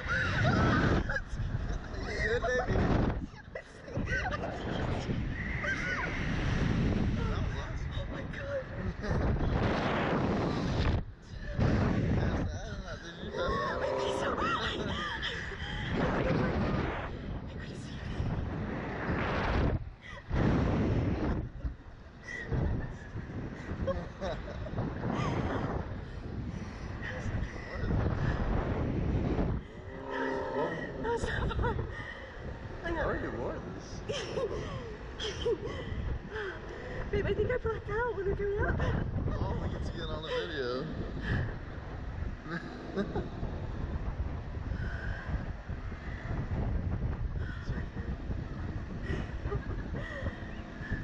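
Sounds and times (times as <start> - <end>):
wind rumble on microphone: 0.0 - 51.0.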